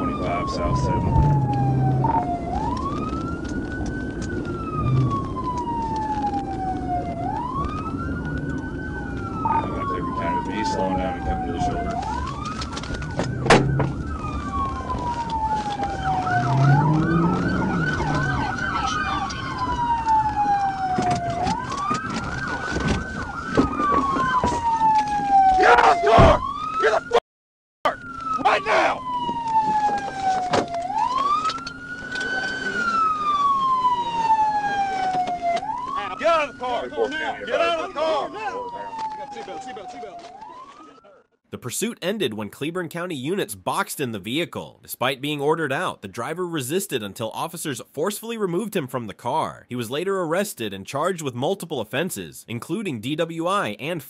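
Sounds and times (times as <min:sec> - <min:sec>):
engine and road noise: 0:00.0 - 0:26.9, 0:27.9 - 0:47.2
police siren wailing: 0:00.0 - 0:27.2, 0:27.9 - 0:41.5
siren yelp: 0:00.0 - 0:27.2, 0:27.8 - 0:41.5.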